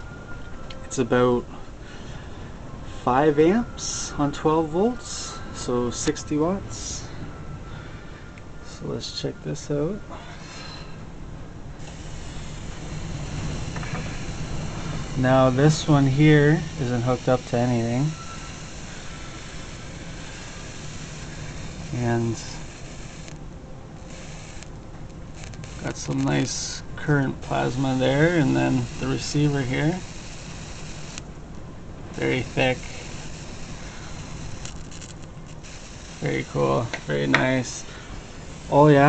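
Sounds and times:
faint high-pitched whine: 0:00.0 - 0:39.0
tesla coil crackling: 0:11.6 - 0:39.0
plasma discharge hissing: 0:11.8 - 0:23.4, 0:27.4 - 0:31.2, 0:32.2 - 0:39.0.

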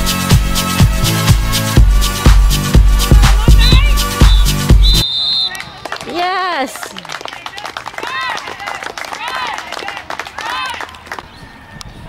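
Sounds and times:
young players cheering: 0:03.1 - 0:11.8
clapping: 0:05.5 - 0:11.3.

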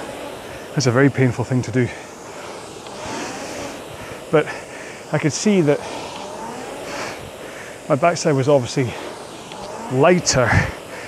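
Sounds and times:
rowing machine flywheel whooshing: 0:00.0 - 0:11.0.

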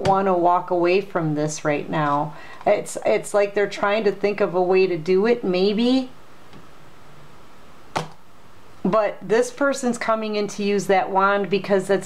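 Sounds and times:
sharp click of cards: 0:07.9 - 0:08.2.

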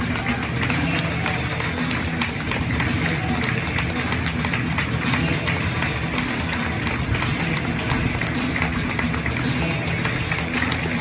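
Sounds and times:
crowd clapping: 0:00.0 - 0:11.0
music over public address: 0:00.0 - 0:11.0.

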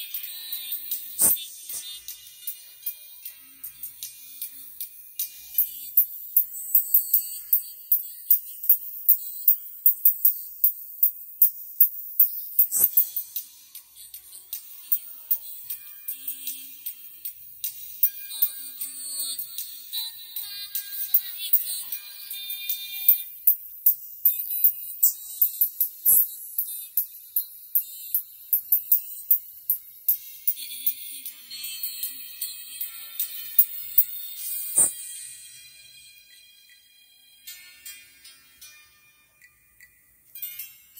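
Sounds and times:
hissy cymbal and percussion strikes: 0:00.0 - 0:36.8
thin treble-only music: 0:00.0 - 0:40.9.

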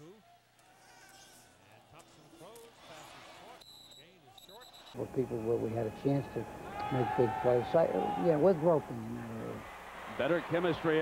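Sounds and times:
crowd and distant voices: 0:00.0 - 0:11.0
referee's whistle: 0:03.6 - 0:05.0.

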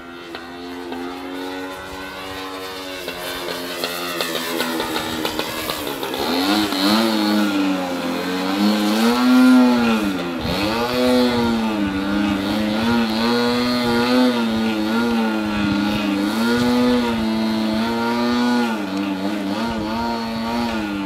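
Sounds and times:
model plane engine buzzing: 0:00.0 - 0:21.0.

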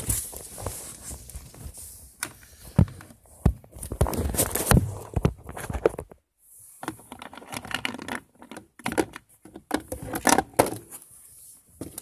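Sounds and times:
plastic toys clicking and rubbing: 0:06.8 - 0:11.1.

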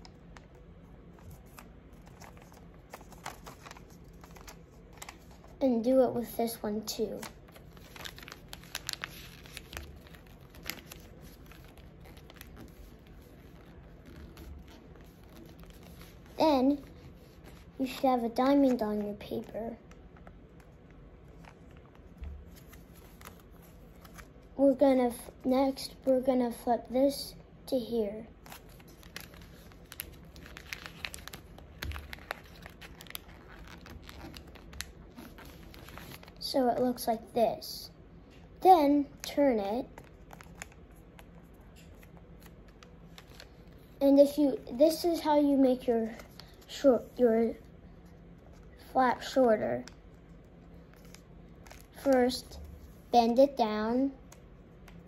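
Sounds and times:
paper folding crinkles: 0:00.0 - 0:05.9, 0:06.5 - 0:24.6, 0:28.3 - 0:36.9, 0:39.2 - 0:44.7, 0:45.5 - 0:53.2.

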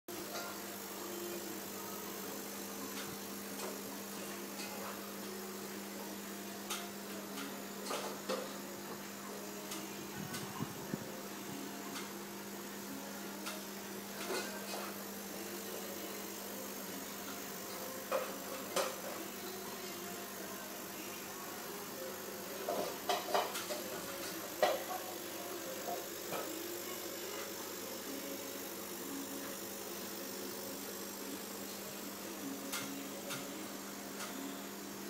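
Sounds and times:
aquarium equipment humming: 0:00.1 - 0:35.0.

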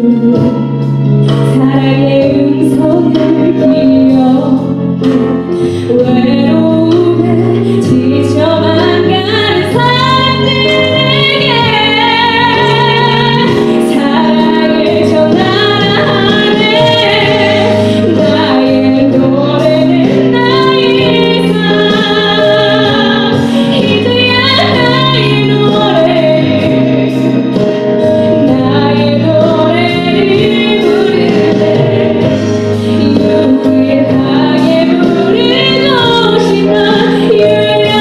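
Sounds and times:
instrumental accompaniment: 0:00.0 - 0:38.0
woman singing into a microphone: 0:00.0 - 0:38.0.

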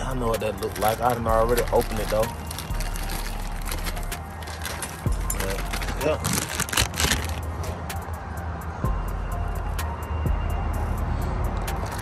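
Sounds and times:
plastic bag rustling and crinkling: 0:00.1 - 0:07.7, 0:11.8 - 0:12.0.

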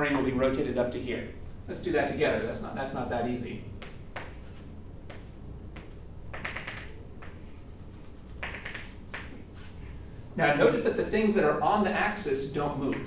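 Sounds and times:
low room hum: 0:00.0 - 0:13.0
chalk tapping on blackboard: 0:03.8 - 0:04.5, 0:05.1 - 0:07.5, 0:08.3 - 0:09.4.

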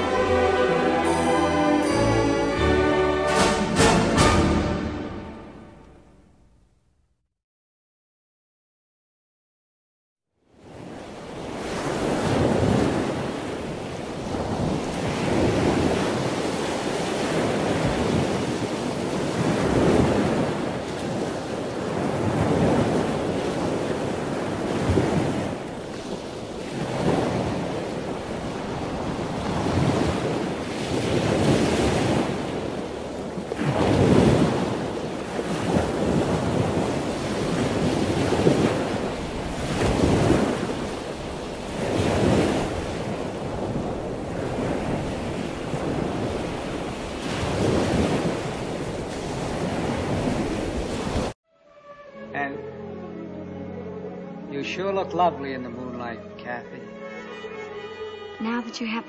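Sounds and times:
surf rushing: 0:10.6 - 0:51.4.

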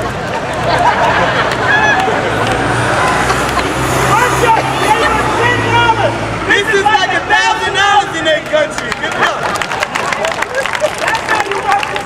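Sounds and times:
heavy vehicle engine droning: 0:00.0 - 0:11.2
crowd babbling and calling: 0:00.0 - 0:12.0.

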